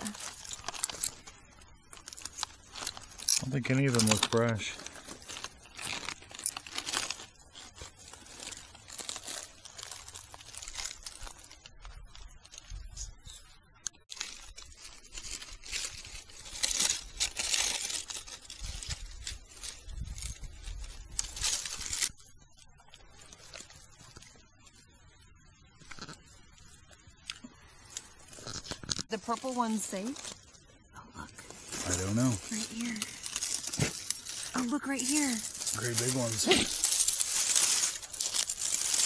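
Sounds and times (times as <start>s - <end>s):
footsteps crunching dry leaves: 0.0s - 12.8s, 14.1s - 25.1s, 31.5s - 39.0s.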